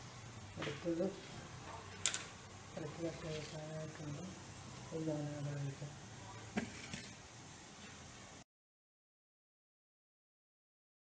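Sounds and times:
faint room hum: 0.0s - 8.4s.

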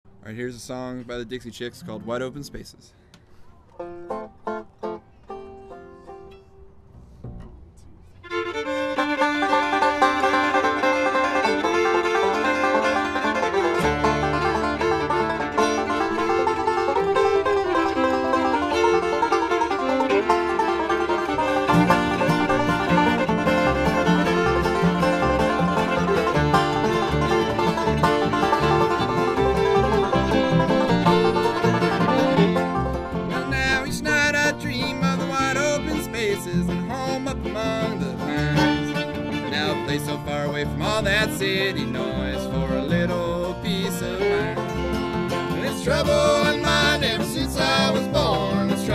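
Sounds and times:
acoustic guitar: 0.2s - 48.9s
fiddle: 0.8s - 48.9s
banjo: 3.6s - 48.9s
upright bass: 3.8s - 48.9s.

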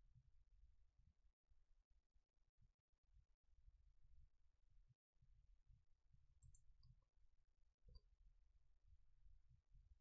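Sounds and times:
mouse button clicks: 6.4s - 7.0s.

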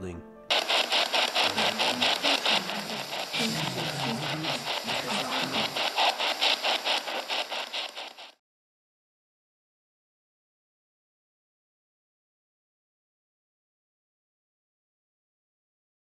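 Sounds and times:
loud pulsing hiss: 0.5s - 8.4s.

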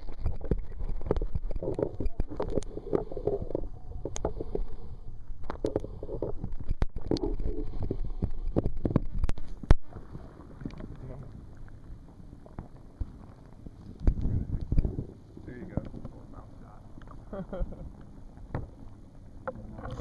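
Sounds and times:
underwater clicks and knocks: 0.0s - 4.8s, 5.4s - 11.0s, 12.4s - 16.3s, 17.9s - 20.0s
low underwater rumble: 0.0s - 20.0s.

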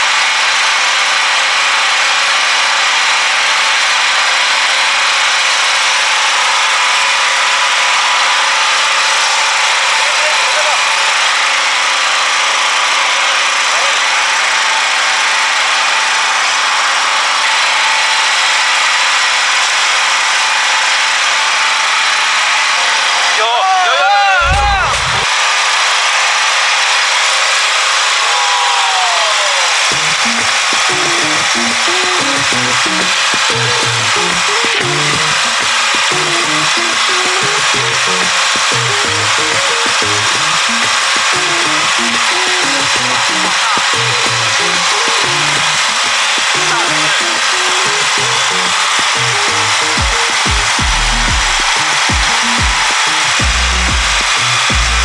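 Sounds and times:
loud steady rushing noise: 29.9s - 55.0s
music bass line: 29.9s - 55.0s.

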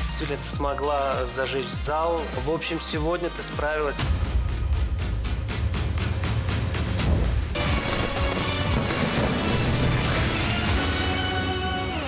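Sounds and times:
theme music with layered chords: 0.0s - 12.0s
sudden crash: 7.1s - 11.3s.

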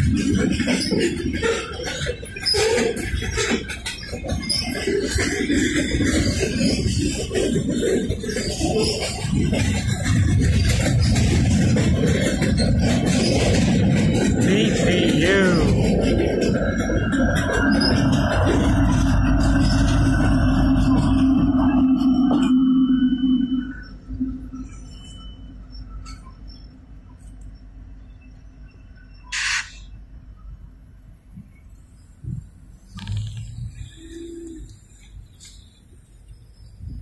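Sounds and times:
diesel locomotive engine drone: 0.0s - 37.0s
wheels rumbling on rail: 0.0s - 37.0s
dove cooing: 33.1s - 34.9s.

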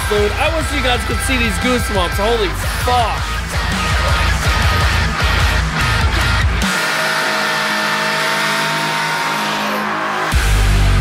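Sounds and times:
distorted heavy metal guitars: 0.0s - 11.0s.

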